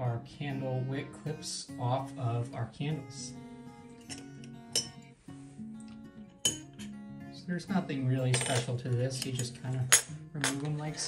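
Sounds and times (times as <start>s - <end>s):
soft guitar music: 0.0s - 11.0s
metal bar clinking on tin: 4.0s - 5.0s, 6.4s - 6.9s, 8.3s - 10.7s.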